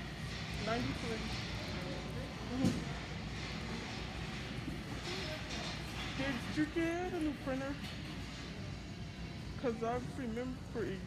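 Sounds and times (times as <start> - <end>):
store interior background noise: 0.0 - 11.0.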